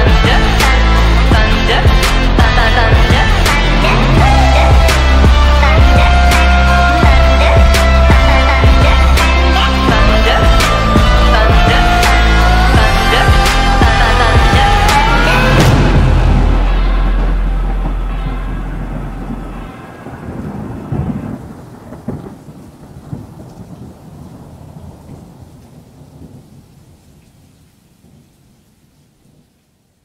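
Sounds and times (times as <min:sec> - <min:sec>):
thunder rumbling: 0:00.0 - 0:28.3
rain: 0:00.0 - 0:30.0
thunder crackle: 0:09.9 - 0:28.6.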